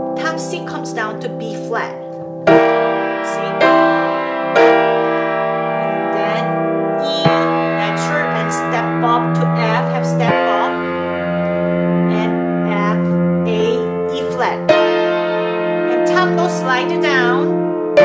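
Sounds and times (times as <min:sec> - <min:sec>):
piano playing slow chords: 0:00.0 - 0:18.0.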